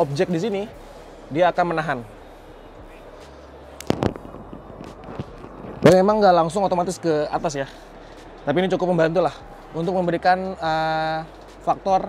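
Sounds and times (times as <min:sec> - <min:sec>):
hubbub of busy hall: 0:00.0 - 0:12.0.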